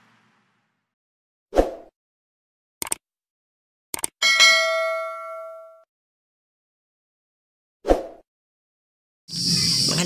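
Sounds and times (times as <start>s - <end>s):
quick clicks: 2.8s - 3.0s, 3.9s - 4.2s
bell ding: 4.2s - 5.9s.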